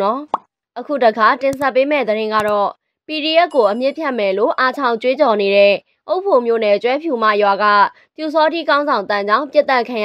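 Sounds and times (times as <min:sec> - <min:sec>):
woman narrating news: 0:00.0 - 0:10.0
sharp clicks: 0:02.4 - 0:02.6.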